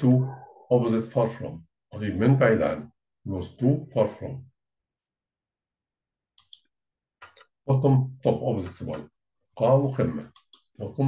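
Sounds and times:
computer mouse clicks: 6.4 - 7.4, 10.3 - 10.7.

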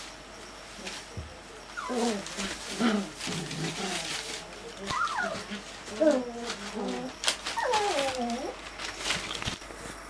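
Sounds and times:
dog whining: 1.8 - 2.4, 4.8 - 8.6.

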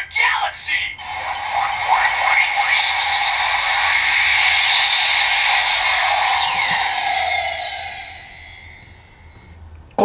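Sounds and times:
toy robot electronic sound effect: 0.0 - 9.3.

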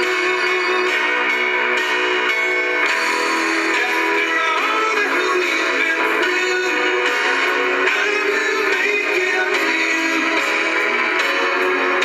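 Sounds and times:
radio music through speakers: 0.0 - 12.0.

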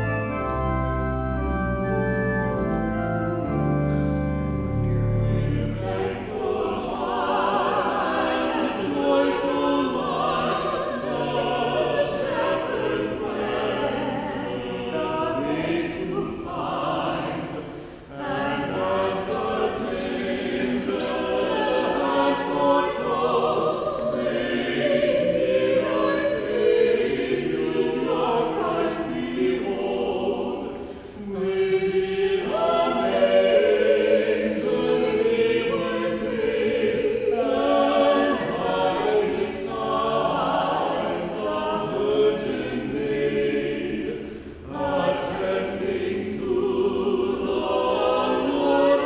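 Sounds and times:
choir singing a hymn: 0.0 - 49.0.

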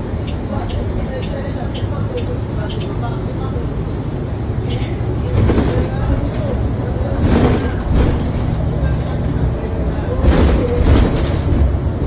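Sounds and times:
bus drivetrain rumble: 0.0 - 12.0
road noise: 0.0 - 12.0.

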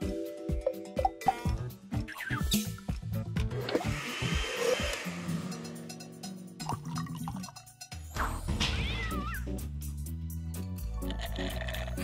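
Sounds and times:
background music: 0.0 - 12.0
blender whirring: 3.8 - 5.3.

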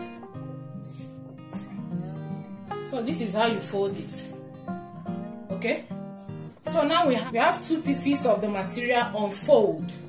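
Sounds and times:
guitar background music: 0.0 - 10.0.

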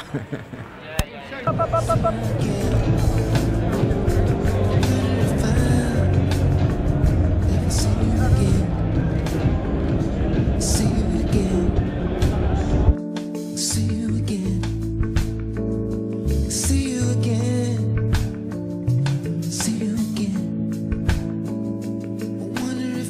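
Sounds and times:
man laughing: 0.0 - 0.8
loud music: 1.5 - 3.2.

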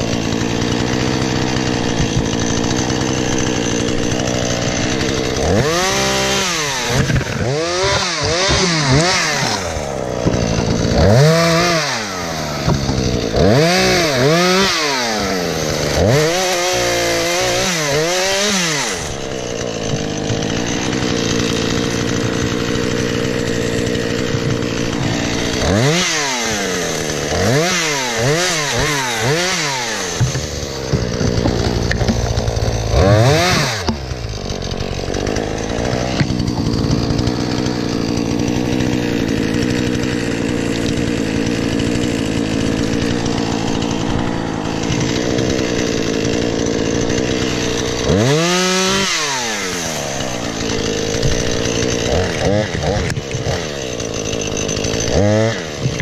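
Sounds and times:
chainsaw running: 0.0 - 56.0.

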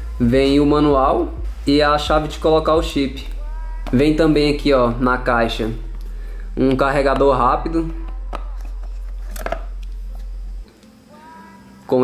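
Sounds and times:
low steady hum: 0.0 - 11.4.

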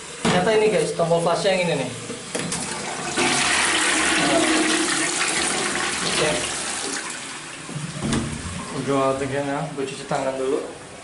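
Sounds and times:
toilet flushing water rush: 2.2 - 9.0.

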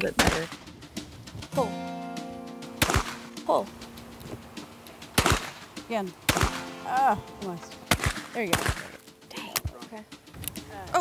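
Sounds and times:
shotgun shot: 0.1 - 0.6, 2.8 - 3.3, 5.2 - 5.7, 6.3 - 6.8, 7.9 - 9.0
person calling: 1.5 - 2.0
sustained music chord: 1.6 - 5.0.

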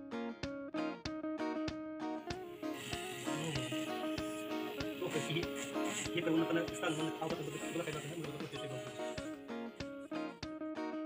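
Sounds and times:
plucked string music with beat: 0.0 - 11.0.

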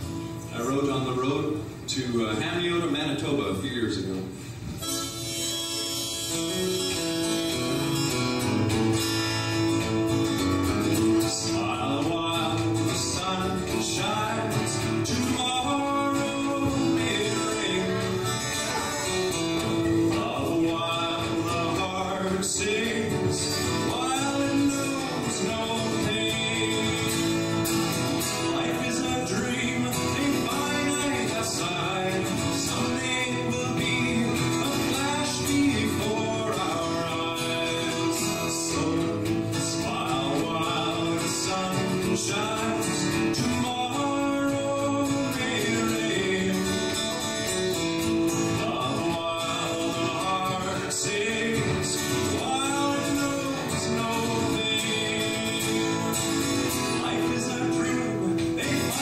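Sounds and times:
man singing: 0.0 - 3.9, 9.0 - 59.0
strummed acoustic guitar: 0.0 - 59.0.

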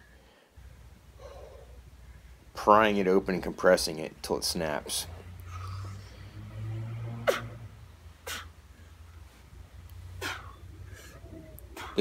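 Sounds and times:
soft breath: 0.0 - 2.4, 5.4 - 6.5, 10.2 - 12.0
low steady hum: 0.0 - 12.0.

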